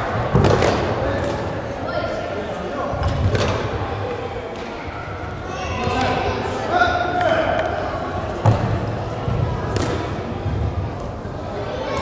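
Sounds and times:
voices echoing in a gymnasium: 0:00.0 - 0:12.0.

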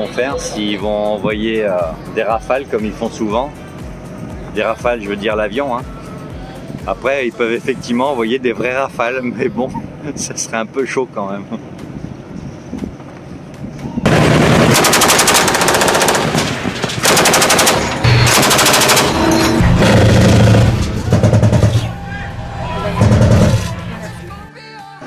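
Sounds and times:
automatic gunfire: 0:14.1 - 0:21.8.

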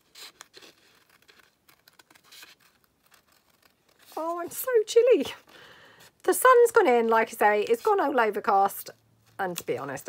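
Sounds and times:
paper rustling: 0:00.0 - 0:06.2.

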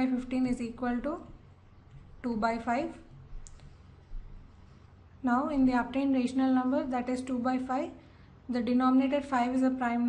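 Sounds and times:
steady low hum: 0:00.0 - 0:10.0
faint sharp clicks: 0:03.4 - 0:03.7.

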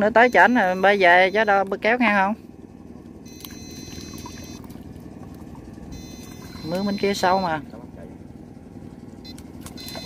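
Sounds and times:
electrofishing shocker whine: 0:00.0 - 0:10.0
steady low rumble: 0:00.0 - 0:10.0.

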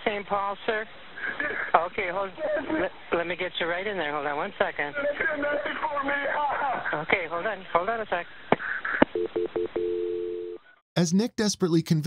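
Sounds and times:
steady telephone tone: 0:09.2 - 0:10.6.

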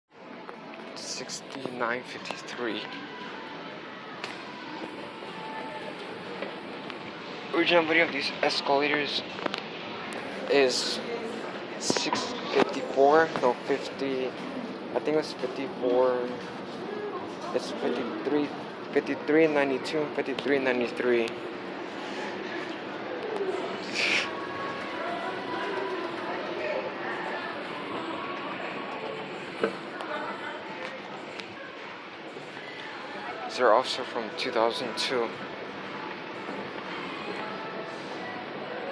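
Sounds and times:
store ambience: 0:00.2 - 0:38.9.

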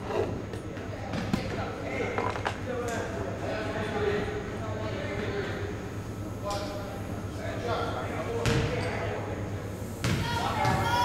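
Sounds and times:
basketball bouncing on wooden floor: 0:10.0 - 0:10.8.

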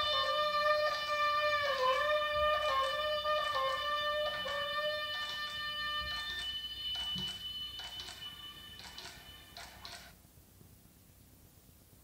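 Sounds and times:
alto saxophone: 0:00.0 - 0:06.4.

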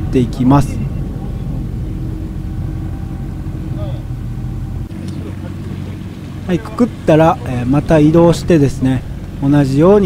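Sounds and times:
boat outboard motor humming: 0:00.0 - 0:10.0.

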